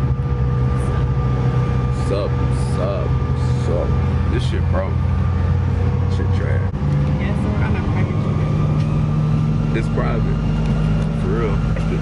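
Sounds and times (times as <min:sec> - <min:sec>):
airplane cabin drone: 0:00.0 - 0:12.0
faint steady whine: 0:00.0 - 0:12.0.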